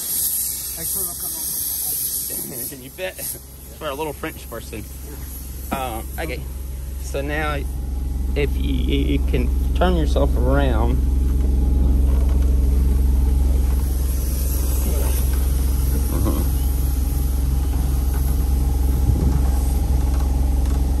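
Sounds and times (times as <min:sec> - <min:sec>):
generator humming: 0:00.0 - 0:21.0.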